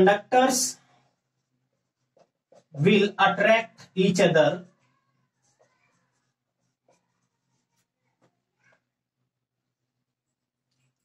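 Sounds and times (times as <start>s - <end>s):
marker pen scratching on whiteboard: 0.0s - 9.0s.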